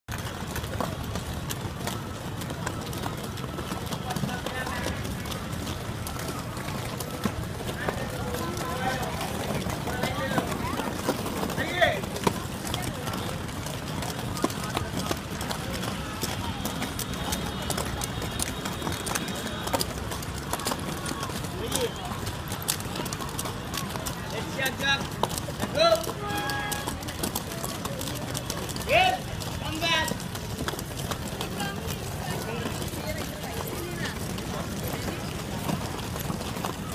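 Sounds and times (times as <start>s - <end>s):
roller skates rolling on concrete: 0.1s - 36.9s
wheels clicking and clattering: 0.1s - 36.9s.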